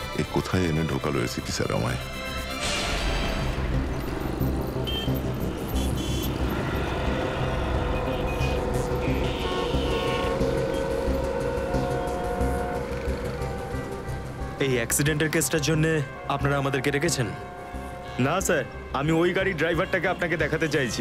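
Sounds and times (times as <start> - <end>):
background music: 0.0 - 21.0
road traffic: 1.6 - 21.0
short car horn toots: 8.0 - 10.8.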